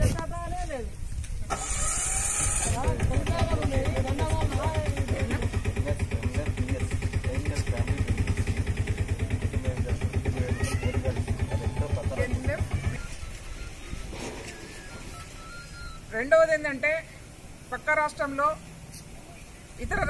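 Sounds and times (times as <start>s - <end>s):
people talking: 0.0s - 1.0s, 2.6s - 15.3s, 15.9s - 17.1s, 17.7s - 20.0s
small engine idling: 1.5s - 16.2s.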